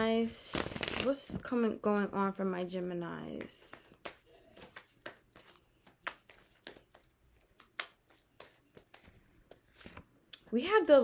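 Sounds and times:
cards being shuffled: 0.5 - 1.2, 3.3 - 10.1.

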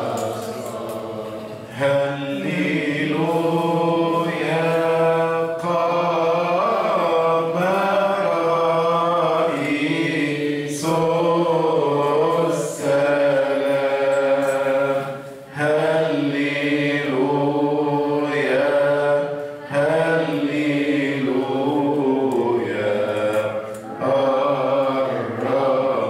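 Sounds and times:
man chanting a hymn: 0.0 - 26.0.

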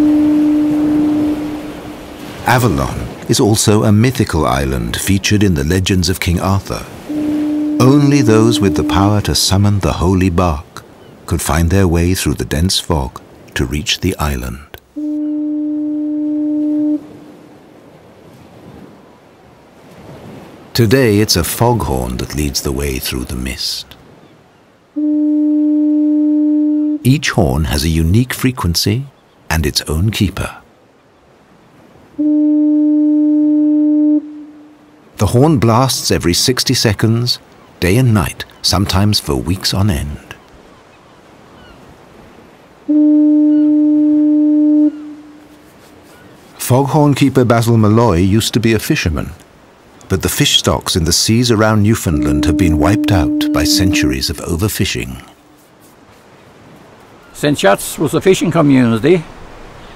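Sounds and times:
foghorn blast: 0.0 - 3.2, 6.2 - 10.2, 14.9 - 17.5, 25.0 - 27.1, 32.0 - 36.6, 42.8 - 46.2, 51.4 - 55.5.

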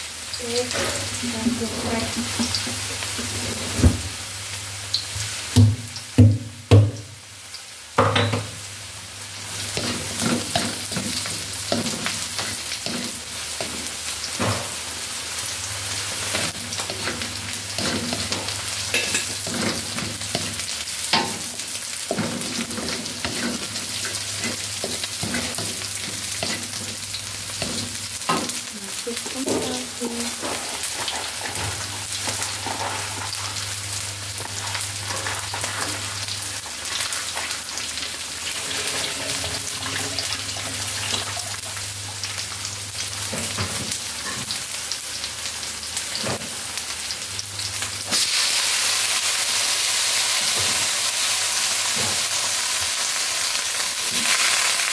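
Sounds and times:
shallots and garlic sizzling: 0.0 - 54.9.

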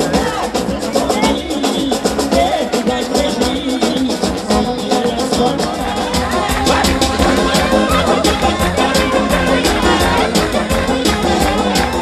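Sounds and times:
brass melody: 0.0 - 12.0
fast steady drumbeat: 0.0 - 12.0.

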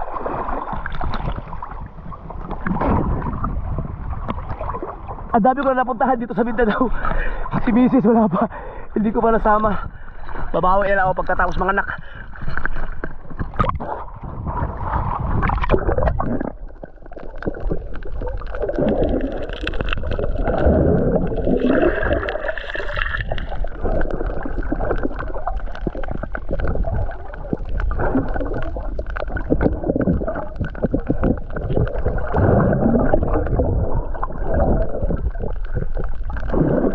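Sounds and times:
underwater gurgling and bubbles: 0.0 - 36.9
water splashing and sloshing: 0.0 - 36.9.

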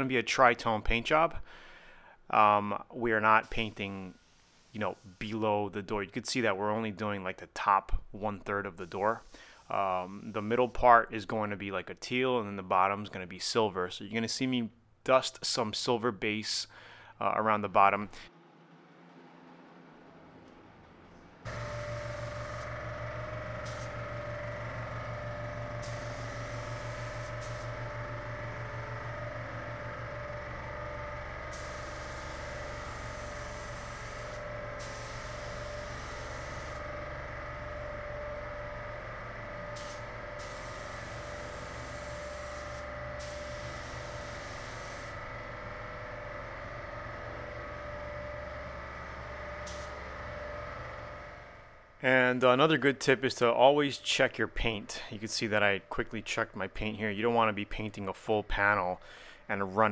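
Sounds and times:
paint spray gun hissing: 3.4 - 5.4, 8.8 - 10.7, 21.4 - 50.4
steady machine hum: 17.8 - 58.0.

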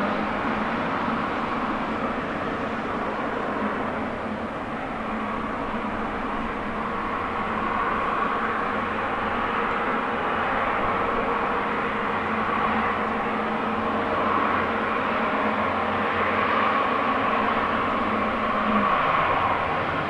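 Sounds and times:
jet engines humming and whining: 0.0 - 20.0.

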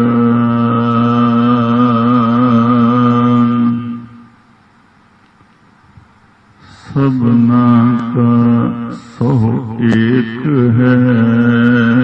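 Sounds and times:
man chanting: 0.0 - 4.3, 6.6 - 12.0.

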